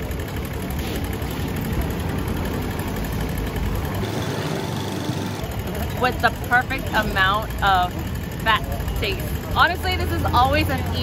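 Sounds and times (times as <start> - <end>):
traffic running and idling: 0.0 - 11.0.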